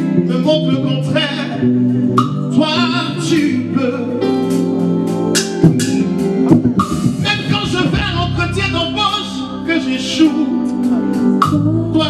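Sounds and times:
man singing: 0:00.0 - 0:04.8, 0:07.0 - 0:12.0
band accompanying: 0:00.0 - 0:12.0
sustained keyboard chords: 0:00.0 - 0:12.0.

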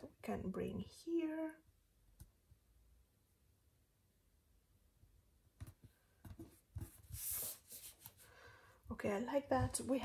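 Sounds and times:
paper rustling: 0:06.4 - 0:08.4.

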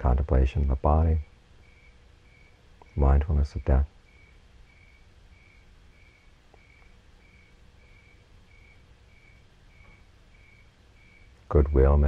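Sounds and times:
low steady hum: 0:00.0 - 0:12.0
faint high-pitched chirps: 0:01.1 - 0:12.0.

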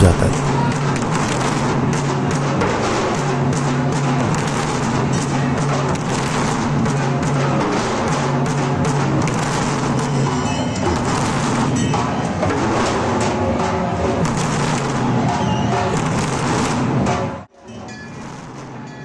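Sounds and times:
drums beaten in fast rhythm: 0:00.0 - 0:17.4.

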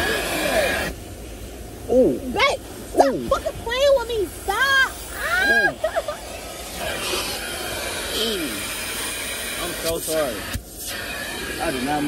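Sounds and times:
vacuum hose rushing air: 0:00.0 - 0:02.0, 0:02.6 - 0:12.0
woman crying out: 0:05.1 - 0:06.2.

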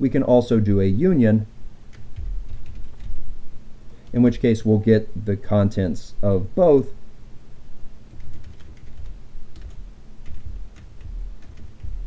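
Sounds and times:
dull low thuds: 0:02.2 - 0:02.7, 0:10.4 - 0:12.0.

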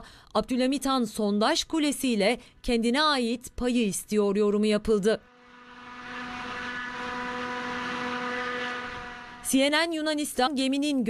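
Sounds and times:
boat engine drone: 0:05.3 - 0:09.9.

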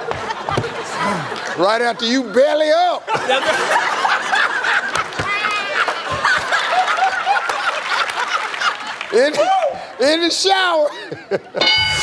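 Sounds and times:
people laughing: 0:00.0 - 0:09.6, 0:10.7 - 0:11.8.

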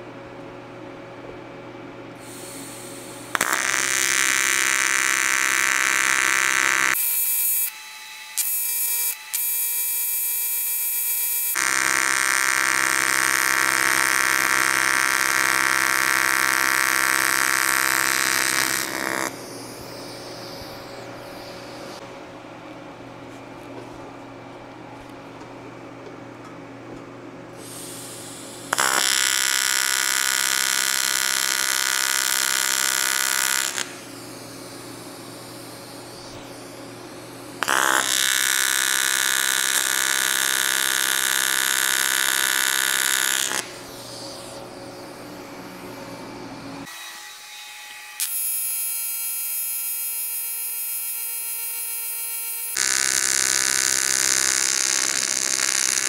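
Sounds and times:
welding arc buzzing: 0:02.2 - 0:22.1, 0:27.6 - 0:56.0.

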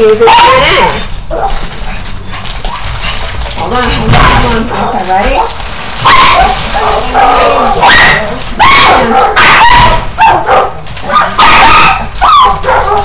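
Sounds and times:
dog barking and yelping: 0:00.2 - 0:01.7, 0:05.4 - 0:13.0.

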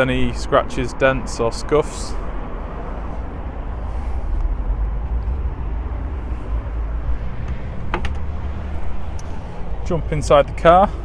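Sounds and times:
steady low rumble: 0:00.0 - 0:11.0
car door latch click: 0:07.4 - 0:08.3.

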